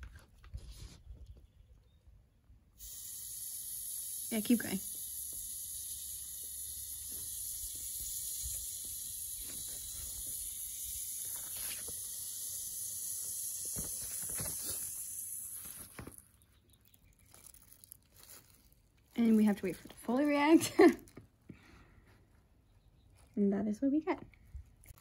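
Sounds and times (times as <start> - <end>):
metal fizzing in acid: 2.8 - 16.0.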